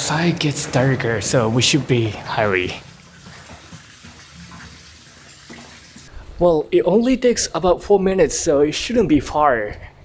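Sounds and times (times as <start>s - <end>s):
water running in fountain: 0.0s - 6.1s.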